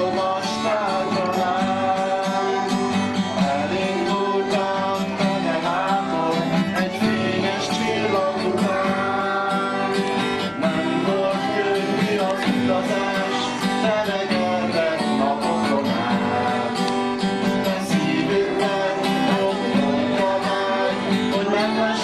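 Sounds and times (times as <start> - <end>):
acoustic guitar strumming: 0.0 - 22.0
children singing: 0.0 - 22.0.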